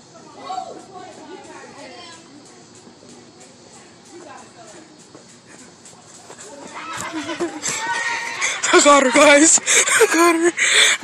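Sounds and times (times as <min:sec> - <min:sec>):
distant voices talking and shouting: 0:00.0 - 0:11.0.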